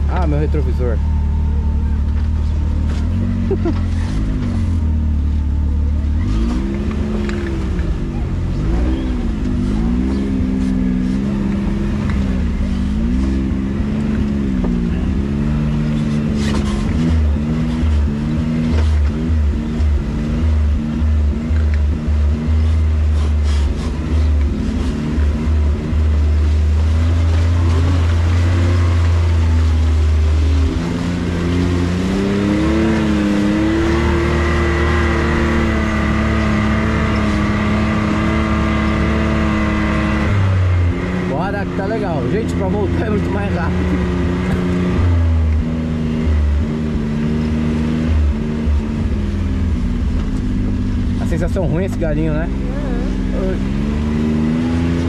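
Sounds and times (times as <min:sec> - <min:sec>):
off-road vehicle engine revving: 0:00.0 - 0:55.0.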